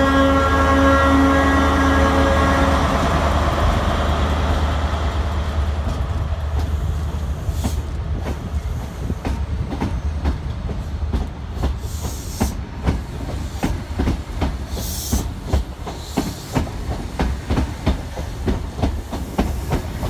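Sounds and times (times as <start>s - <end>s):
train low rumble: 0.0s - 20.0s.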